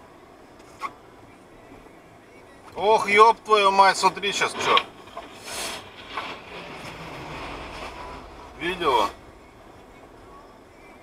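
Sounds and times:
road and engine noise in car: 0.0 - 11.0
truck passing: 4.0 - 11.0.

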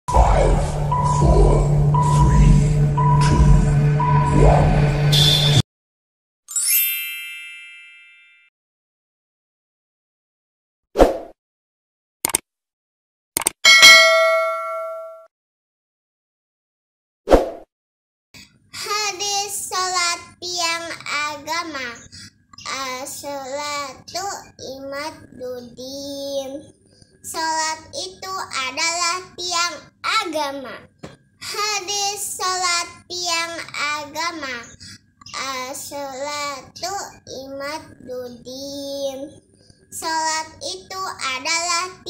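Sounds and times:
high beep tone: 0.1 - 5.6
low humming drone: 0.1 - 5.6
notification bell ding: 6.5 - 8.5, 13.7 - 15.3
mouse clicks: 13.4 - 13.6
child chanting: 18.8 - 42.0.

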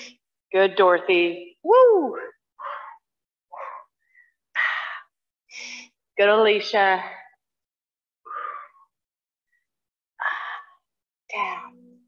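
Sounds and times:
woman shouting woo: 1.7 - 2.2
woman breathing hard: 8.2 - 9.0.

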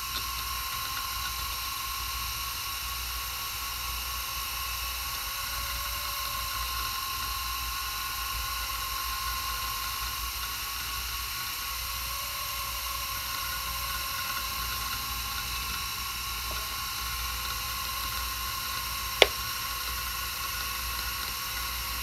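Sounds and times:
hard drive whining: 4.8 - 22.0.

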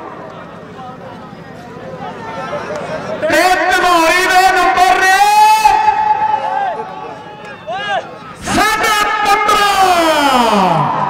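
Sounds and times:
man shouting through pa: 3.2 - 6.9, 7.7 - 11.0.

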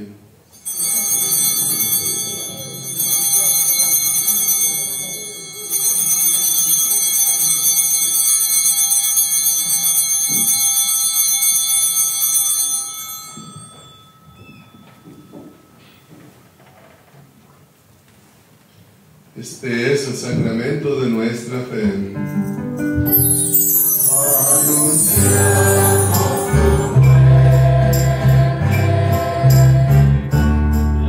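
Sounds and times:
cluster of small bells ringing: 0.5 - 16.7, 22.3 - 30.0.

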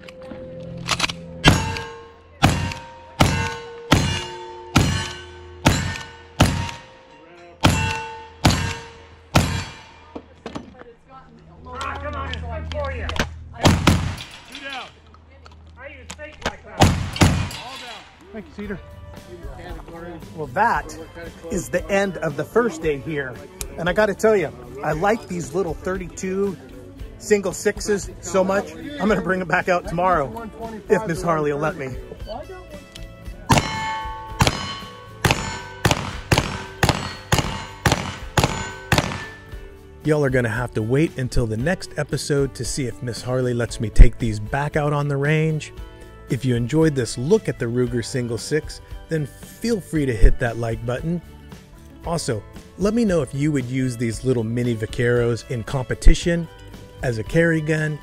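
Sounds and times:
background music: 0.0 - 58.0
black powder gunshots: 1.4 - 1.8, 2.4 - 6.8, 7.6 - 9.8, 13.6 - 14.3, 16.8 - 17.6, 33.5 - 39.5.

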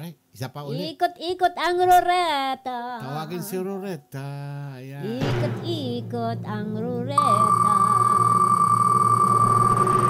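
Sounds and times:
rapid electronic ticks: 7.2 - 10.0.

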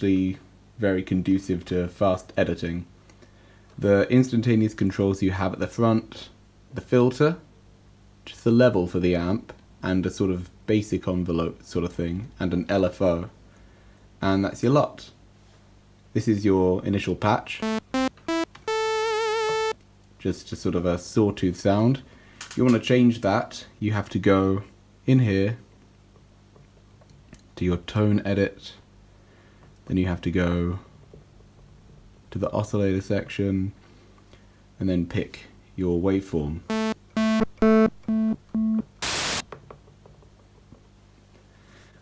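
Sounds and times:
synthesizer sawtooth notes: 17.6 - 19.8, 36.7 - 38.8
short burst of hiss: 39.0 - 39.4.

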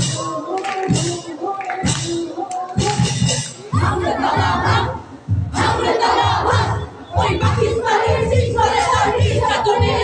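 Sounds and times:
low steady beat: 0.0 - 10.0.

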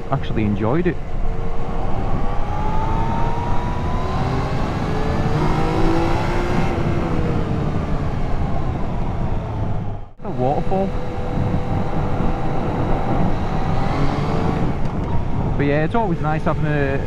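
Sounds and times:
motorcycle engine accelerating: 0.0 - 17.0
wind and road noise: 0.0 - 17.0.

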